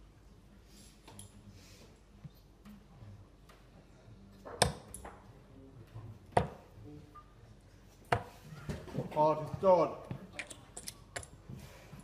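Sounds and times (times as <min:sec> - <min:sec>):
faint pub room noise: 0:00.0 - 0:12.0
darts thudding into dartboard: 0:06.4 - 0:06.7.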